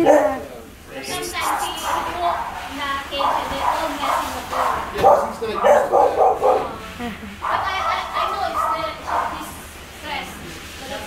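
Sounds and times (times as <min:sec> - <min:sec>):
person laughing: 0:06.8 - 0:07.4.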